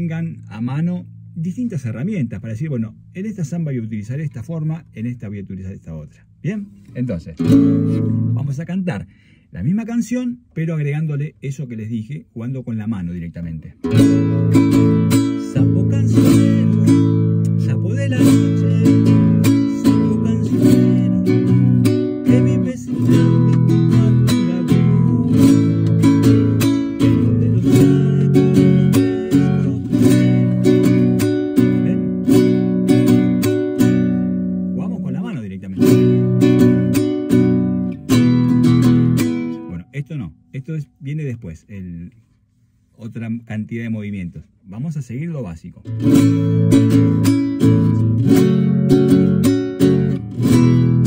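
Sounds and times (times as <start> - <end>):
classical guitar strumming: 6.8 - 8.6, 13.8 - 39.9, 45.9 - 51.0
man singing: 14.0 - 32.2.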